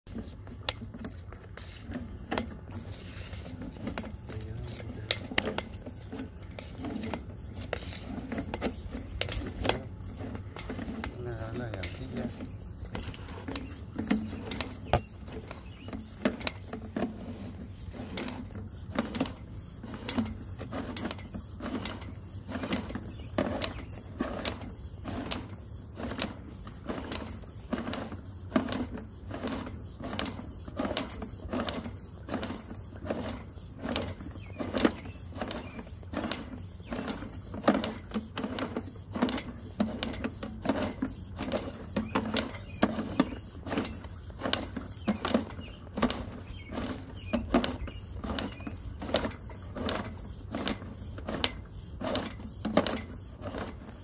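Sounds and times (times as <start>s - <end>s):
steady low hum: 0.1s - 54.0s.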